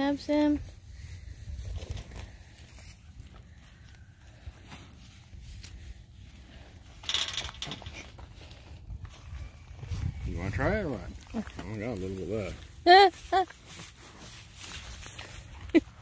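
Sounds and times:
rustle of grass blades: 0.4s - 6.8s, 8.2s - 16.0s
calf chewing grass: 10.8s - 16.0s.

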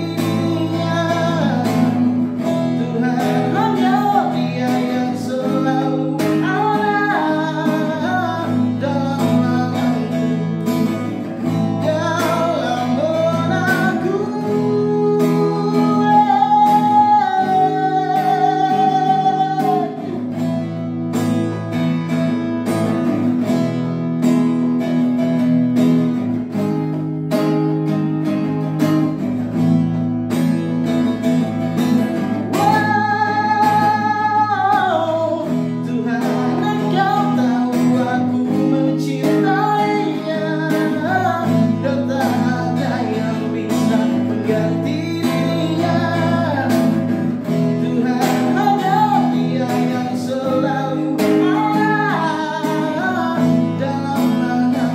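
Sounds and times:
person singing: 0.0s - 21.6s, 31.1s - 54.9s
acoustic guitar strumming: 0.0s - 54.9s.

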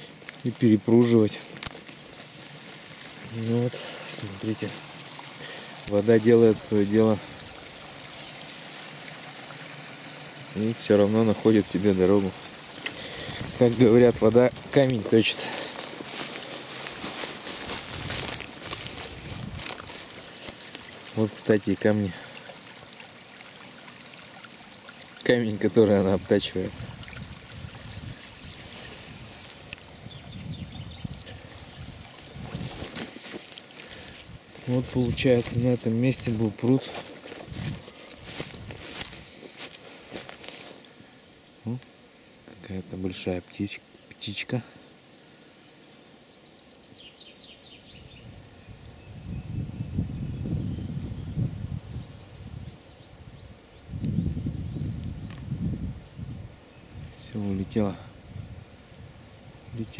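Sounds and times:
dry grass crackling under footsteps: 0.0s - 10.5s, 11.2s - 25.3s, 26.2s - 40.9s
wind rumbling on microphone: 12.2s - 15.2s, 16.0s - 21.3s, 26.0s - 39.7s, 48.0s - 57.2s, 58.0s - 59.9s
small bird chirping: 29.2s - 31.9s.

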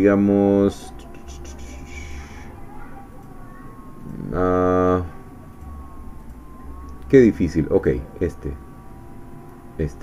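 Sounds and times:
background hum: 0.0s - 10.0s
faint thin steady whine: 0.0s - 10.0s.

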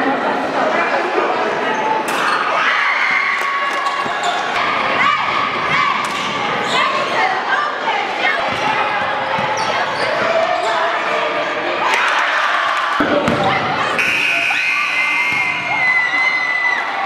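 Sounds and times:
voices echoing in a hall: 0.0s - 17.0s
sneakers squeaking: 3.7s - 4.6s, 5.7s - 7.2s, 8.4s - 11.0s
basketball bouncing on court: 8.5s - 9.6s, 13.0s - 13.7s.

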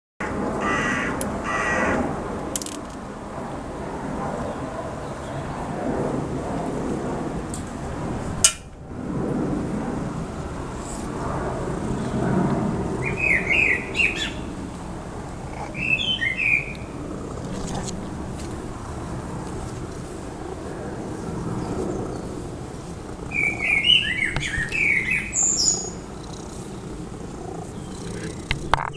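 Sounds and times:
small birds chirping: 15.4s - 18.0s, 23.2s - 28.9s.

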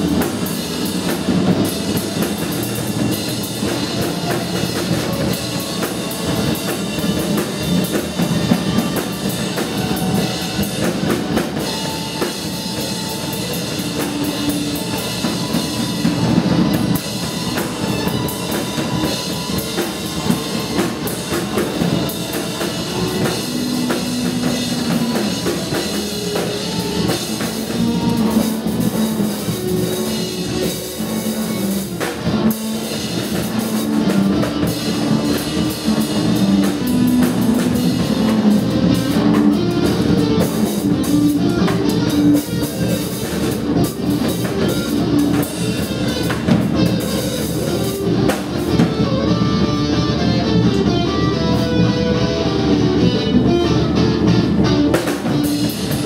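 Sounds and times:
drum kit: 0.0s - 56.0s
guitar: 0.0s - 56.0s
live rock band playing: 0.0s - 56.0s.

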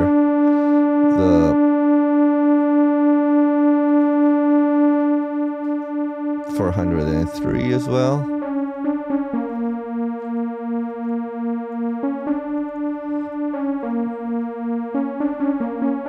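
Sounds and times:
synthesizer sustained sawtooth notes: 0.0s - 16.0s.

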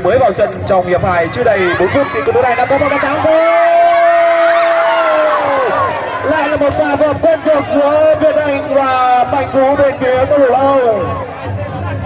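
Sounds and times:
crowd cheering: 1.3s - 12.0s.

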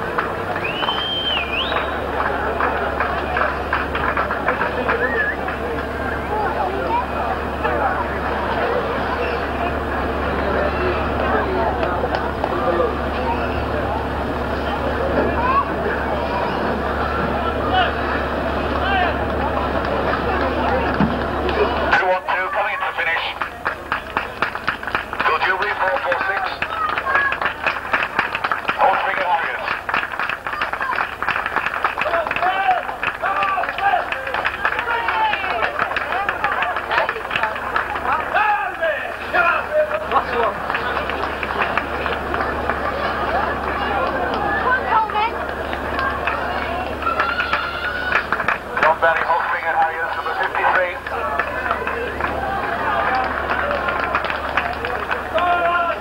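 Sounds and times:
chatter of spectators: 0.0s - 56.0s.

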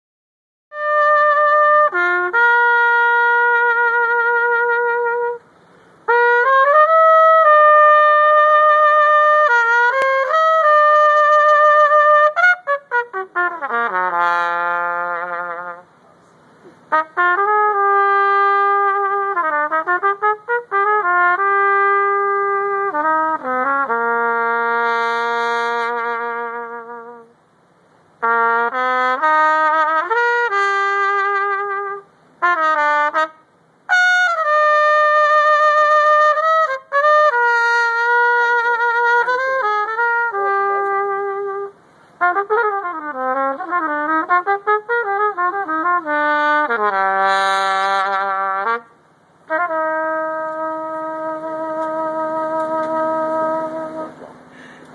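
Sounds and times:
solo trumpet: 0.7s - 54.9s.

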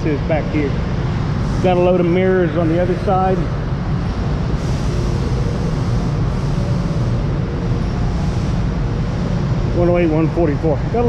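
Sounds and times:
faint hum: 0.0s - 11.0s
low mechanical rumble: 0.0s - 11.0s.

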